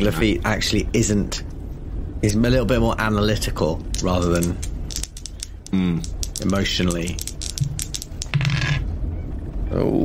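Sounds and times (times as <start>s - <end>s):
dice clattering on hard surface: 3.9s - 8.8s.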